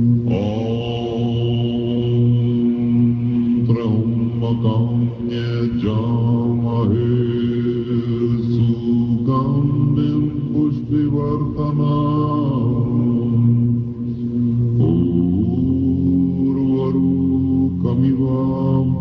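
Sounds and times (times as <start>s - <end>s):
group chanting prayers: 0.0s - 19.0s.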